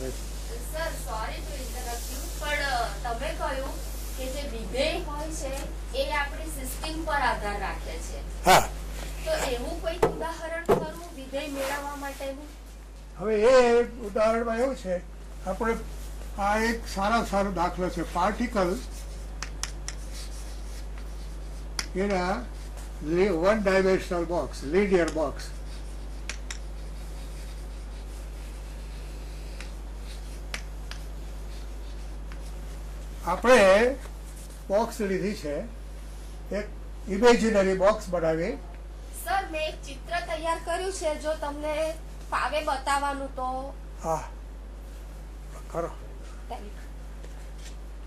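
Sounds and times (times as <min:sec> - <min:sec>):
chalk strokes on chalkboard: 0:00.0 - 0:04.5, 0:10.8 - 0:12.5, 0:17.1 - 0:23.5, 0:24.9 - 0:34.7
steady low hum: 0:00.0 - 0:48.0
duster rubbing chalkboard: 0:25.0 - 0:33.2.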